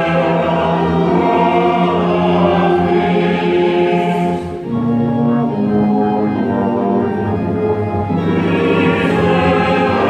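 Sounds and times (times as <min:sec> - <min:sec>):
mixed choir singing: 0:00.0 - 0:04.9, 0:08.0 - 0:10.0
orchestra playing: 0:00.0 - 0:10.0.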